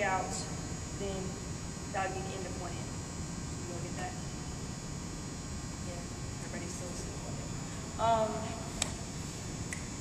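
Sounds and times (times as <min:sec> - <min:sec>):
electrical hum and hiss: 0:00.0 - 0:10.0.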